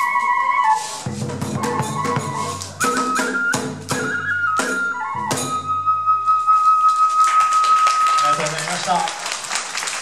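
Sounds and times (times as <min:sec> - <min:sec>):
bamboo flute long note: 0:00.0 - 0:08.5
audience applause: 0:07.2 - 0:10.0.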